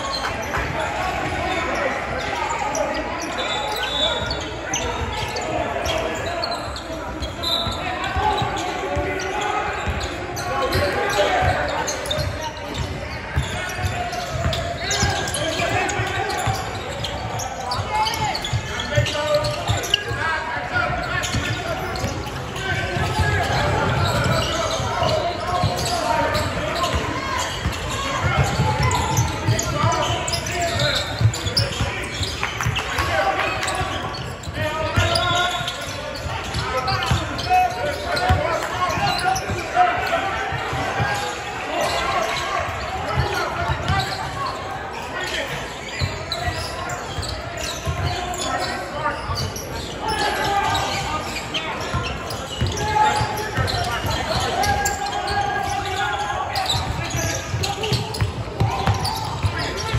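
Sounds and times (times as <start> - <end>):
echoing voices in a hall: 0.0 - 59.9.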